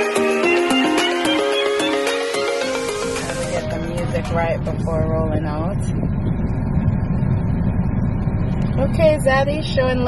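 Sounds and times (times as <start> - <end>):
car engine rumble in cabin: 2.5 - 10.0.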